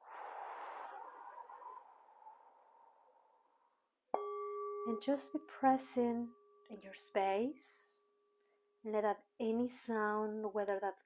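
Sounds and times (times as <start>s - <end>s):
slow breath out: 0.0s - 3.6s.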